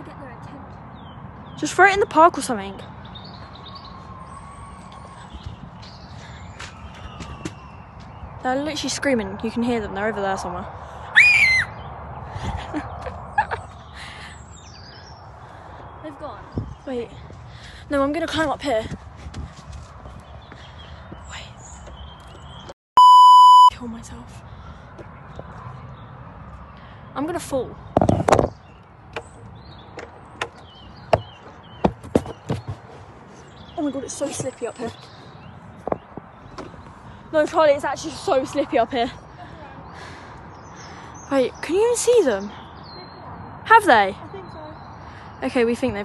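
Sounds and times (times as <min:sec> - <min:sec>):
outdoor background noise: 0:00.0 - 0:46.0
distant people screaming: 0:11.1 - 0:11.8
censor bleep: 0:23.0 - 0:23.7.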